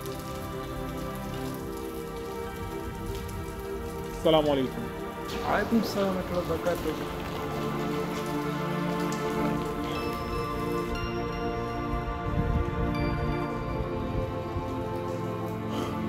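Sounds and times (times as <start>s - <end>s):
soft background music chords: 0.0s - 16.0s
steady rain falling: 0.0s - 16.0s.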